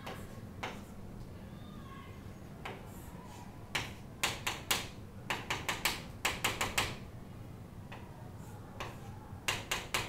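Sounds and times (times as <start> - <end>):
chalk writing on a chalkboard: 0.0 - 1.0, 2.6 - 4.7, 8.3 - 10.0.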